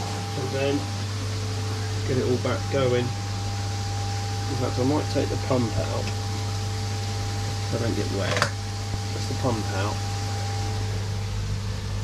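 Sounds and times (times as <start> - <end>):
low electrical hum of filtration equipment: 0.0 - 12.0.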